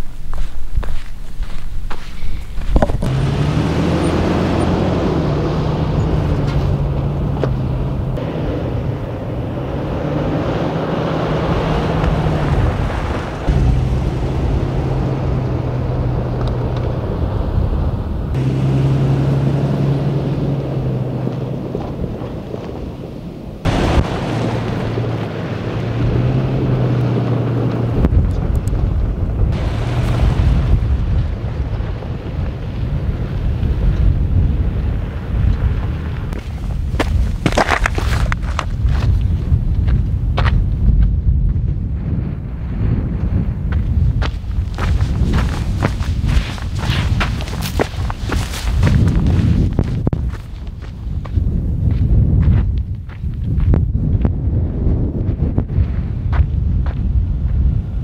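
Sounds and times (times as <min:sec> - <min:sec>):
car engine humming: 0:00.0 - 0:38.6
tyres on gravel and sand: 0:00.0 - 0:58.0
wind buffeting microphone: 0:00.0 - 0:58.0.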